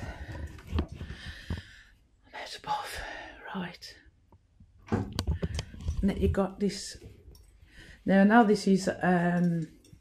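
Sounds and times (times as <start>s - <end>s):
person breathing heavily: 0.0s - 2.1s.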